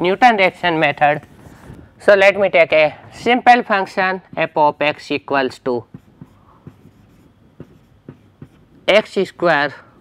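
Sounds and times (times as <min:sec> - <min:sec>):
marker writing on whiteboard: 0:03.6 - 0:09.2
marker tip tapping board: 0:05.8 - 0:08.6.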